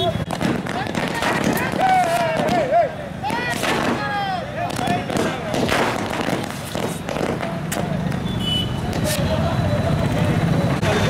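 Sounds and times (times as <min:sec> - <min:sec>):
firecrackers banging: 0:00.0 - 0:10.9
people shouting: 0:00.7 - 0:05.4.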